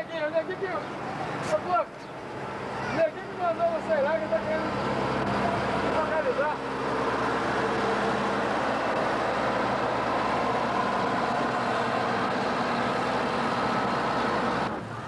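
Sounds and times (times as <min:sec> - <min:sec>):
construction machinery engine running: 0:00.0 - 0:15.0.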